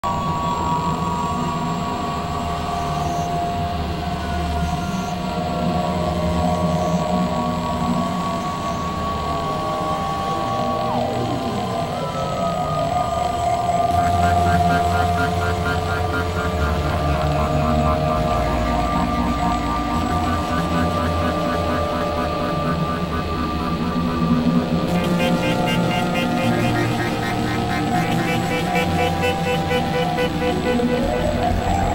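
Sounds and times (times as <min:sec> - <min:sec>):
electronic drone music: 0:13.0 - 0:31.9
synth tone gliding down: 0:13.6 - 0:31.9
fast fluttering high tones: 0:13.9 - 0:31.9.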